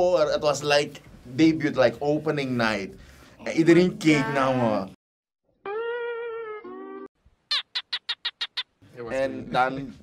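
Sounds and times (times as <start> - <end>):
bird chirping: 5.7 - 8.8.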